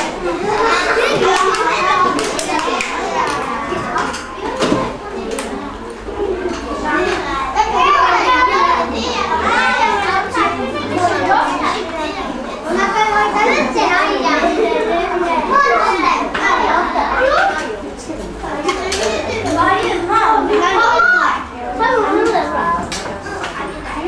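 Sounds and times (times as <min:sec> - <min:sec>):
children talking at once: 0:00.0 - 0:24.0.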